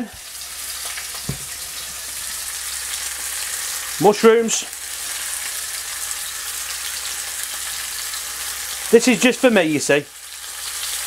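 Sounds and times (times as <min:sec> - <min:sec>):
sausages sizzling in a pan: 0:00.0 - 0:11.0.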